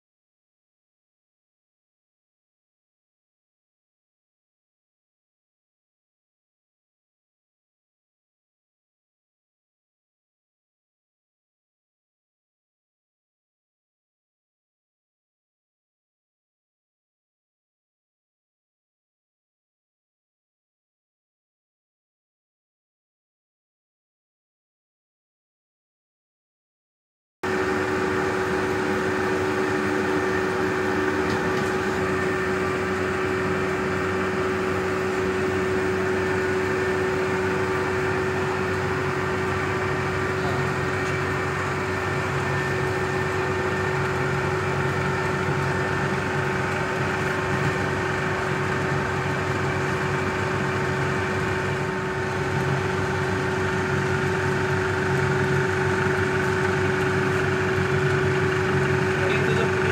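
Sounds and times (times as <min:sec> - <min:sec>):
film projector humming: 0:27.4 - 0:59.9.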